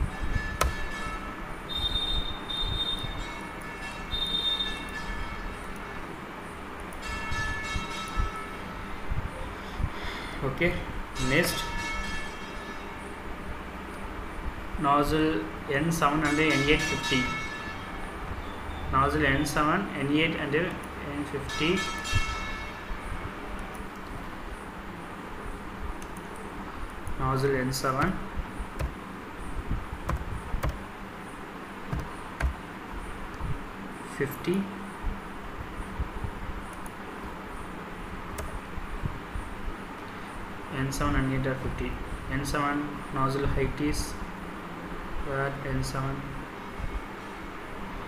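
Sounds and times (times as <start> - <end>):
short ringing tone: 0.0 - 6.1, 16.2 - 18.9
background hum and hiss: 0.0 - 48.0
faint high whining tones: 0.0 - 48.0.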